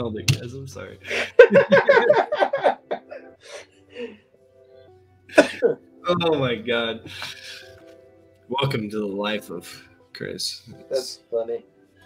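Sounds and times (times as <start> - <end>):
man coughing: 5.3 - 5.8.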